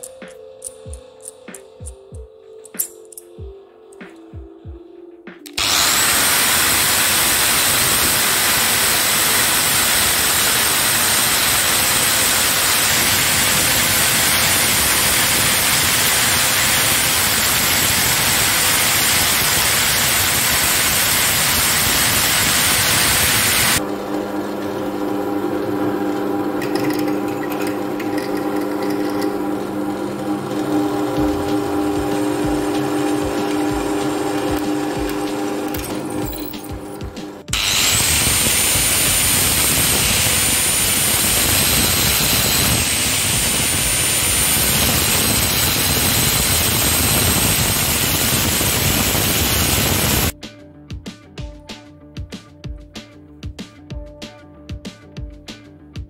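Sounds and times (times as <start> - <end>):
angle grinder cutting steel: 5.5 - 50.3
drill press humming: 5.5 - 50.3.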